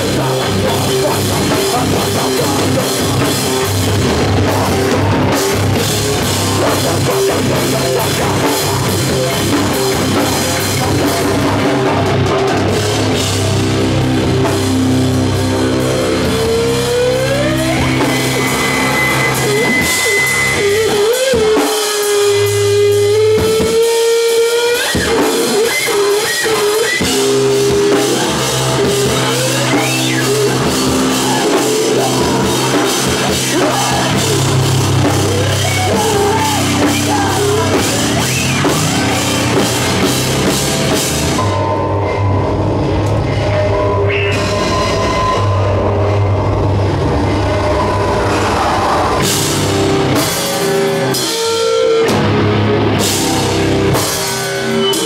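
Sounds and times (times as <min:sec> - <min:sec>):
electric guitar feedback: 0:00.0 - 0:55.0
heavy band playing live: 0:00.0 - 0:55.0.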